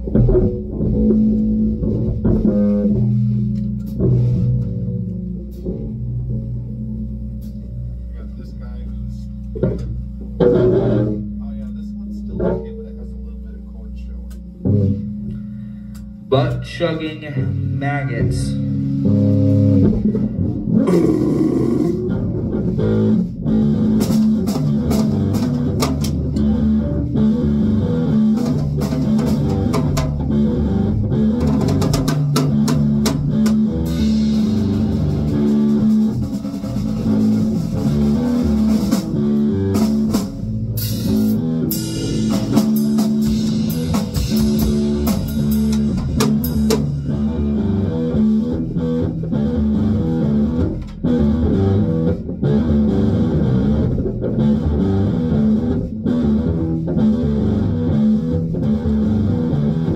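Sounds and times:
electric bass line: 0.0s - 59.9s
drum and cymbal hits: 18.3s - 48.4s.

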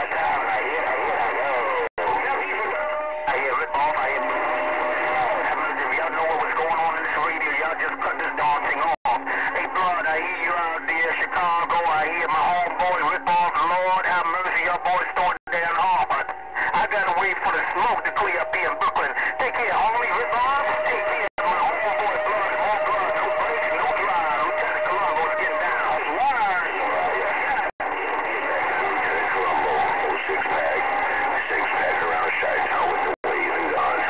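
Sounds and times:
garbled radio voices: 0.0s - 34.0s
steady radio whistle: 0.0s - 34.0s.

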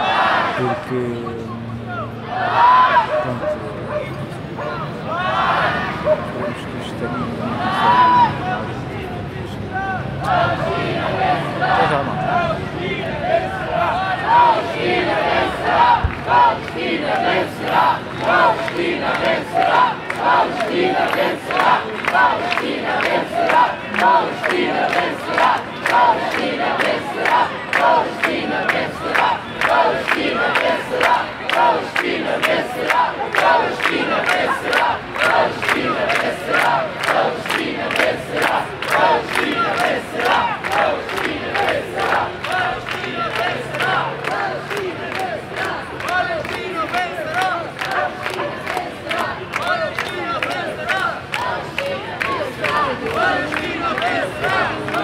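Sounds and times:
crowd chanting slogans: 0.0s - 55.0s.

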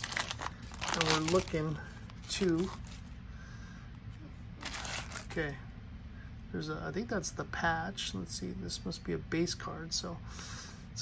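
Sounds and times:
foil wrapper crinkling: 0.0s - 3.2s, 4.6s - 5.5s.

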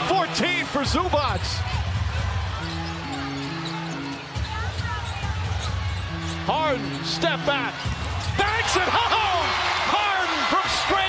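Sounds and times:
arena crowd noise: 0.0s - 11.0s
sneakers squeaking: 1.6s - 8.8s.

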